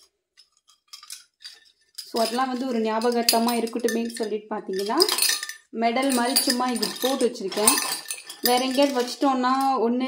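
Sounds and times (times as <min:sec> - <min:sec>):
metal medals clinking: 0:00.4 - 0:09.7.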